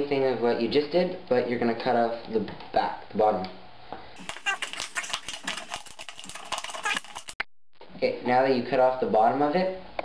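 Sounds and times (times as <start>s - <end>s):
knife cutting plastic bottle: 4.2s - 7.4s.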